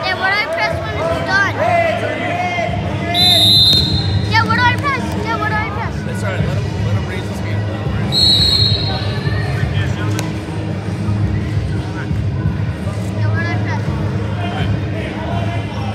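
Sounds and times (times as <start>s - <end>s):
crowd chatter: 0.0s - 15.9s
referee's whistle blast: 3.2s - 4.4s, 8.1s - 9.3s.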